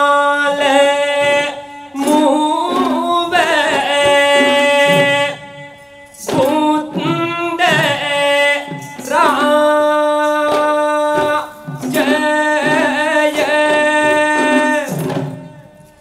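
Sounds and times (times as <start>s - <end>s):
instrumental accompaniment: 0.0s - 16.0s.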